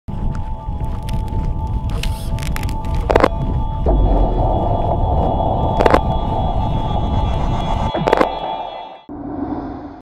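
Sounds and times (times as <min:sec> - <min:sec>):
loud low rumble: 0:01.5 - 0:10.0.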